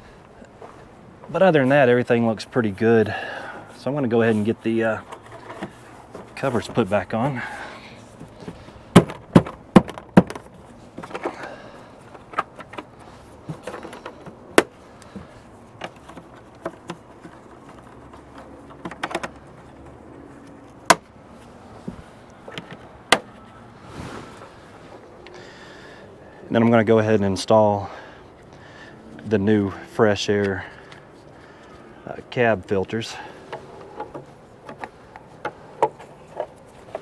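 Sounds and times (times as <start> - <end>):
panels clicking and knocking: 8.1 - 21.2, 21.8 - 23.5, 33.0 - 37.0.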